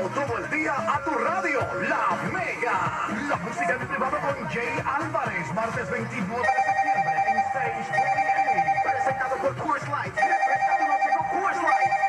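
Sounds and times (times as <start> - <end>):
electronic telephone ringtone: 6.4 - 9.6, 10.2 - 12.0.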